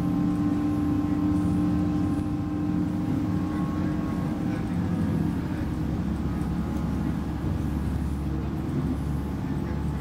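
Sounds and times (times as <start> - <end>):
train diesel engine droning: 0.0 - 10.0
wheels rumbling on rail: 0.0 - 10.0.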